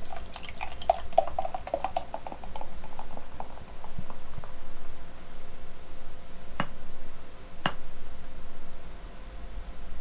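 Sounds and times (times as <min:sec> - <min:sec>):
beer pouring into a glass: 0:00.0 - 0:04.6.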